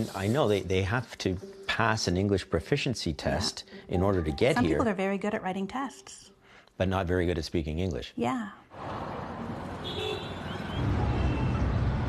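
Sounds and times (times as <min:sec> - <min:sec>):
street traffic: 0:08.6 - 0:12.0.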